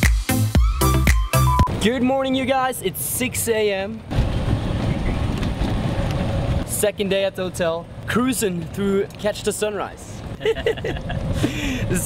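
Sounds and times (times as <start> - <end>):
golf cart driving: 3.9 - 12.0
wind rumbling on microphone: 4.0 - 6.7, 10.2 - 12.0.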